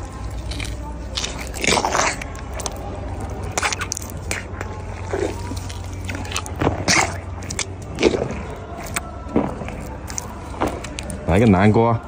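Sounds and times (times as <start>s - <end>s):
elephant crunching carrot: 0.0s - 12.0s.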